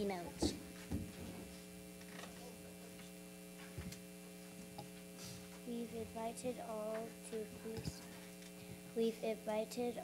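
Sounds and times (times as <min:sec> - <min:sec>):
electrical hum from sound system: 0:00.0 - 0:10.0
faint knocks on lectern: 0:00.4 - 0:01.5.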